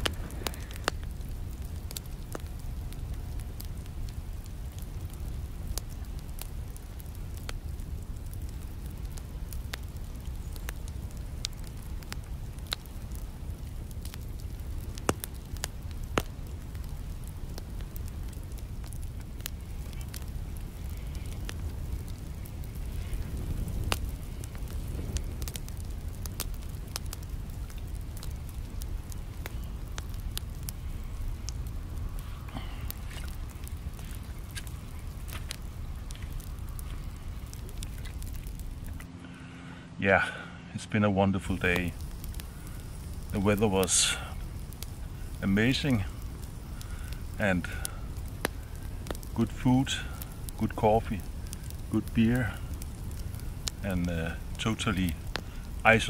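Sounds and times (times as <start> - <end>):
wood fire crackling in a stove: 0.0 - 56.0.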